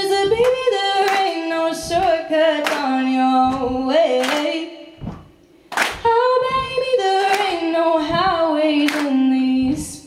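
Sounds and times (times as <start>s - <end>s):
woman singing unaccompanied: 0.0s - 5.0s, 6.0s - 10.0s
low thumps: 0.0s - 10.0s
audience stomping and clapping: 0.2s - 10.0s.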